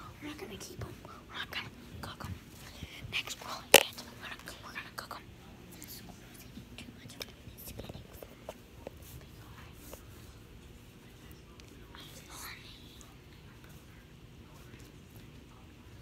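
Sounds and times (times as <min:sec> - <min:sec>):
low steady hum: 0:00.0 - 0:16.0
soft whispering: 0:00.0 - 0:16.0.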